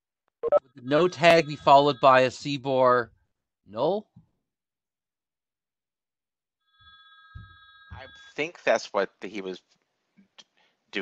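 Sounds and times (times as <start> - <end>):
faint electronic ringing tone: 0.4 - 2.4.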